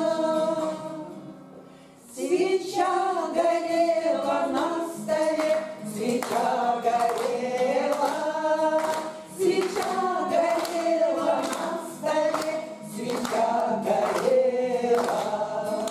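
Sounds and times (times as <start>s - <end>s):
women singing in chorus: 0.0s - 1.3s, 2.0s - 15.9s
strummed acoustic guitar: 0.0s - 15.9s.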